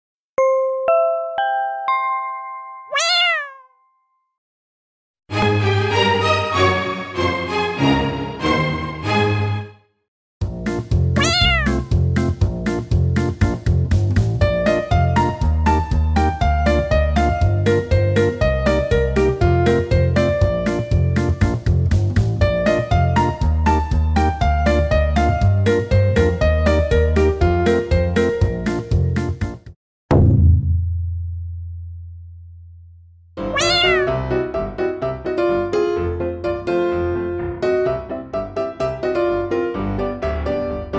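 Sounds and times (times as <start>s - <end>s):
light piano music: 0.4s - 3.0s, 14.4s - 29.6s, 33.4s - 40.9s
cat meowing: 2.9s - 3.7s, 11.2s - 11.9s, 33.4s - 34.2s
low hum from sound effect hit: 30.1s - 32.9s.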